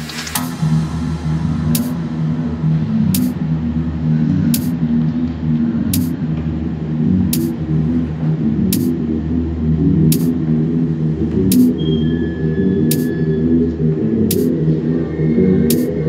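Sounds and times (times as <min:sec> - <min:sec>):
drum and bass music: 0:00.0 - 0:16.0
bright hiss-like hit: 0:00.4 - 0:02.6, 0:03.2 - 0:03.4.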